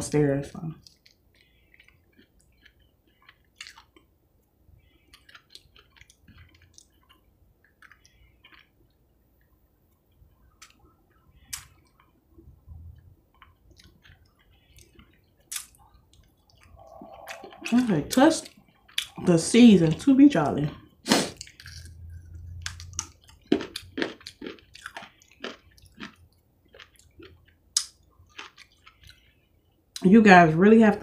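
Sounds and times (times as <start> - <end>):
faint chewing: 0.7 - 30.0.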